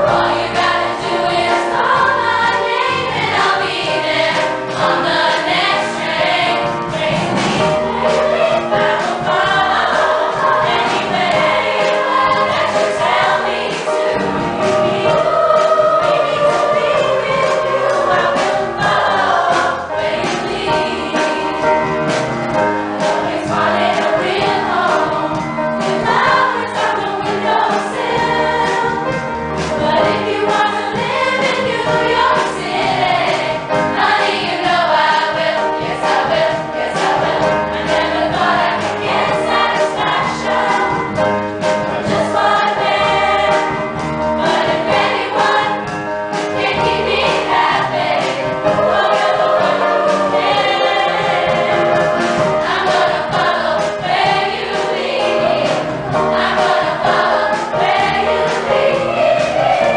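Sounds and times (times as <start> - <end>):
girls' chorus singing: 0.0 - 59.9.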